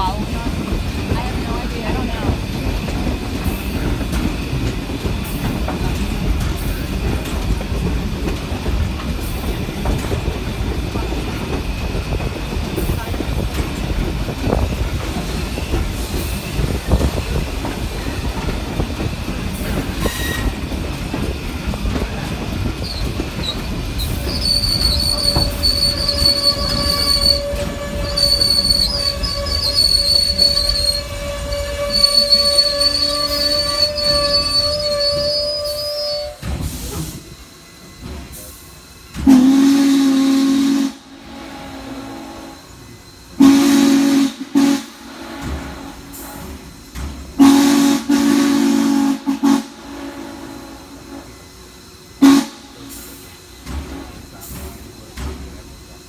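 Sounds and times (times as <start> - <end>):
steam locomotive rumbling: 0.0 - 56.0
high squeal of wheels: 20.0 - 20.6, 22.8 - 36.5
steam whistle blasts: 24.1 - 36.5, 39.3 - 42.8, 43.4 - 46.5, 47.4 - 51.4, 52.2 - 53.2.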